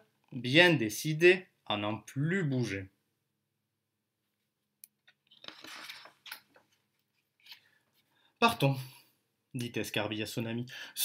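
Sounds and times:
book page turning: 5.2s - 7.8s.

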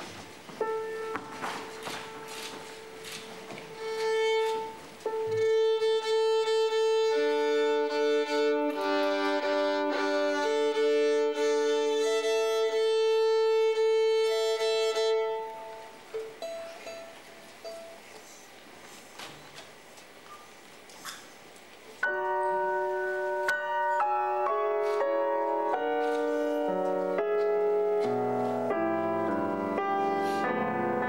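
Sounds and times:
violin being tuned: 0.6s - 17.9s, 22.0s - 30.7s.

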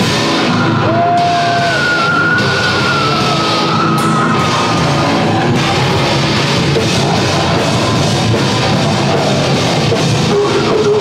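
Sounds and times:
distorted guitar and drums: 0.0s - 11.0s.

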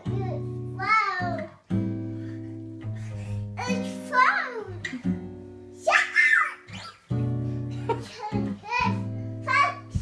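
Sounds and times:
acoustic guitar strummed chords: 0.0s - 10.0s
toddler calling out: 5.9s - 6.8s.

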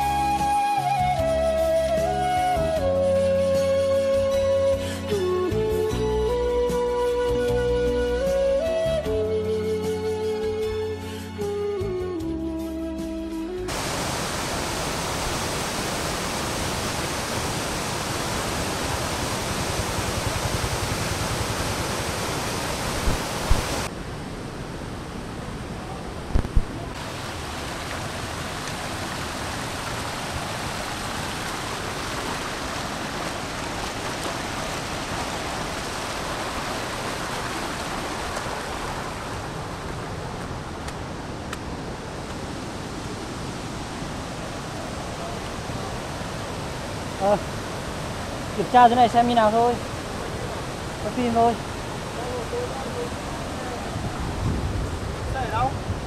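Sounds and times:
floodwater rushing: 13.7s - 56.0s.

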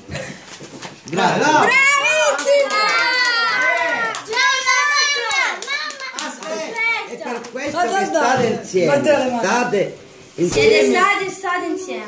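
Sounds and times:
child speaking: 1.6s - 7.3s, 10.6s - 12.0s.

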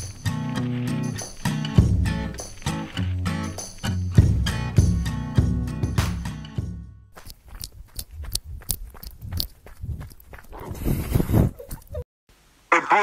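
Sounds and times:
quick footsteps: 0.0s - 4.4s, 7.1s - 12.0s
background music: 0.0s - 7.1s.

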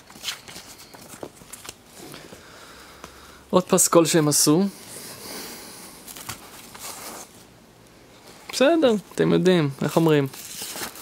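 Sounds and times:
cardboard sleeve rustling: 6.0s - 7.5s, 8.4s - 11.0s.

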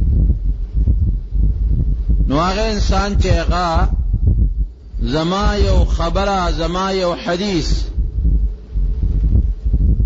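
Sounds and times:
low rumble: 0.0s - 10.0s.

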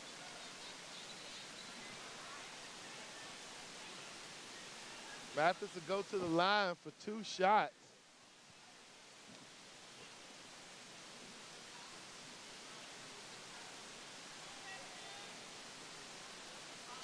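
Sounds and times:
faint distant voices: 0.0s - 17.0s
gymnasium ambience hiss: 0.0s - 17.0s.

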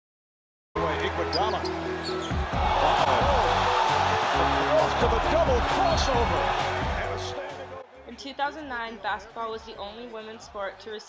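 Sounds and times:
arena crowd noise: 0.8s - 11.0s
music playing: 0.8s - 11.0s.

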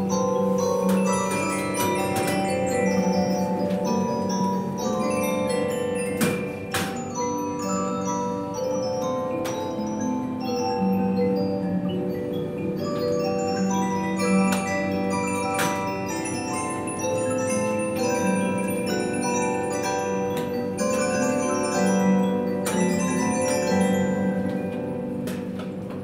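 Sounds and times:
disc music box playing: 0.0s - 26.0s.

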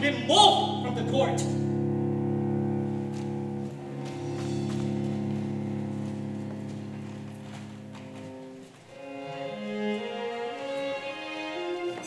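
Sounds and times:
held low orchestral chord: 0.0s - 12.0s.

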